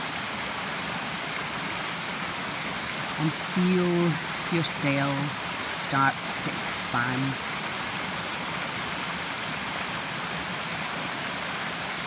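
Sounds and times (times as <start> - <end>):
stream rushing over rocks: 0.0 - 12.0.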